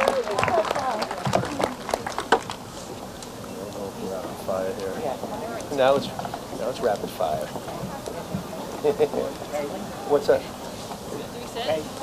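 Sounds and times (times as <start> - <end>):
crowd cheering: 0.0 - 3.8
background murmur: 0.0 - 12.0.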